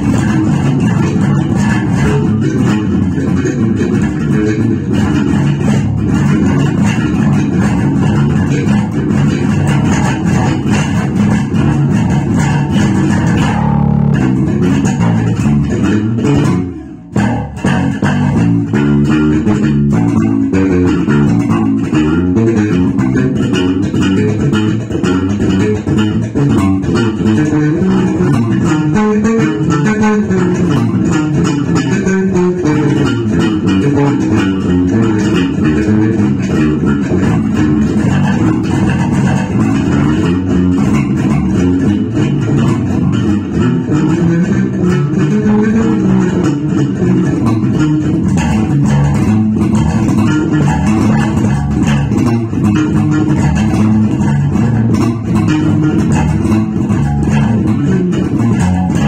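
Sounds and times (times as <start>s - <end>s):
electric bass guitar groove: 0.0s - 59.0s.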